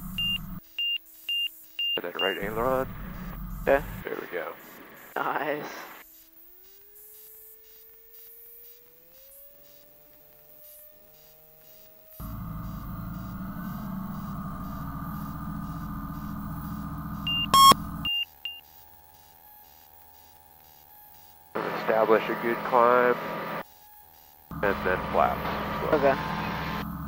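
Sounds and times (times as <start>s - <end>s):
short high avionics beeps: 0.1s - 5.3s, 11.2s - 18.8s, 24.5s - 27.0s
aircraft engine tone rising: 12.2s - 18.2s, 24.5s - 27.0s.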